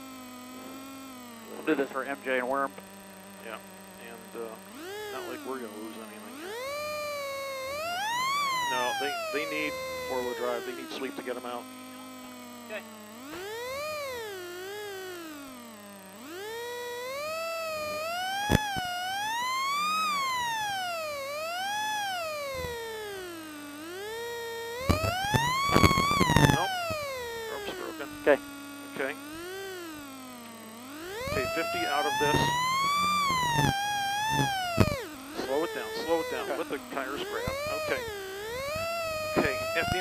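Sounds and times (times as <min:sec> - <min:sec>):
wheels spinning in snow: 0:00.0 - 0:40.0.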